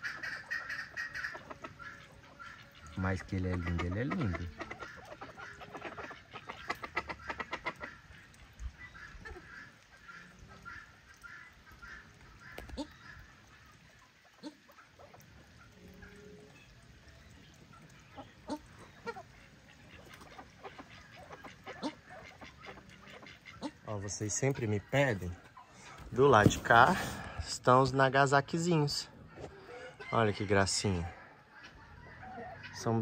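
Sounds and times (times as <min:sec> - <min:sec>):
waterfowl honking: 0:00.0 - 0:33.0.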